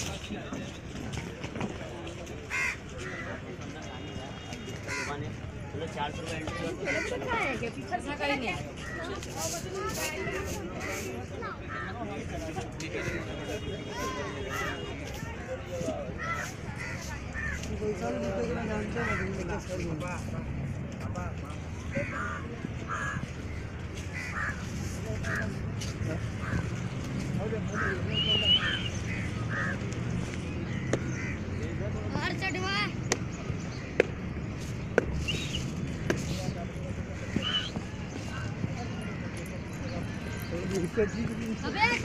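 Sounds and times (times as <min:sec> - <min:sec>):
murmur of people talking: 0:00.0 - 0:42.0
crow cawing: 0:02.5 - 0:03.4, 0:04.9 - 0:05.2, 0:16.2 - 0:17.7, 0:22.0 - 0:25.5, 0:28.7 - 0:29.8, 0:30.7 - 0:31.6.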